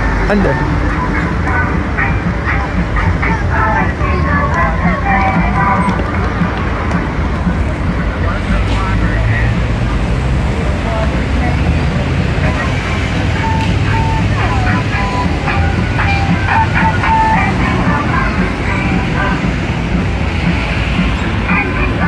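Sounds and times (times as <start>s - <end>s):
road traffic rumble: 0.0s - 22.0s
people talking: 0.2s - 0.7s, 7.4s - 13.0s.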